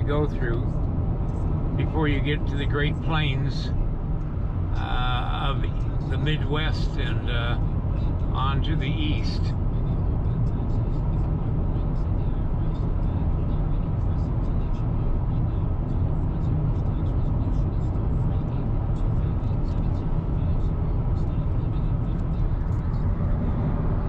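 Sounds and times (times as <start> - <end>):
low engine drone: 0.0 - 24.0
road and tyre noise: 0.0 - 24.0.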